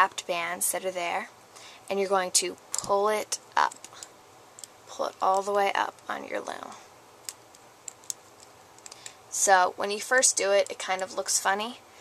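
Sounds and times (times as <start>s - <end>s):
faint handling clicks: 7.3s - 9.2s.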